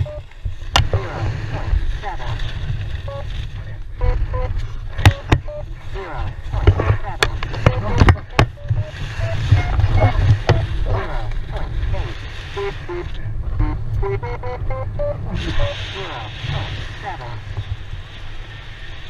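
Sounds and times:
wind rushing over microphone: 0.0s - 19.0s.

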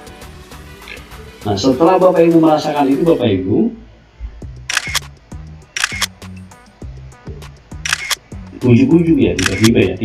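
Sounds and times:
soft music with repeating bass: 0.0s - 3.2s, 4.1s - 10.0s
sharp click sound effects: 4.7s - 6.4s, 7.8s - 8.3s, 9.4s - 9.8s.

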